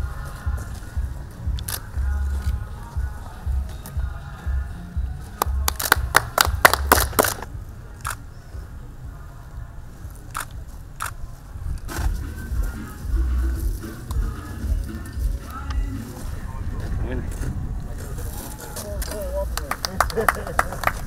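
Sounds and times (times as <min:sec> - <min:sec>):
music with pulsing beat: 0:00.0 - 0:07.4, 0:12.0 - 0:16.4
camera shutters clicking: 0:01.6 - 0:02.6, 0:06.7 - 0:08.2, 0:10.3 - 0:11.2.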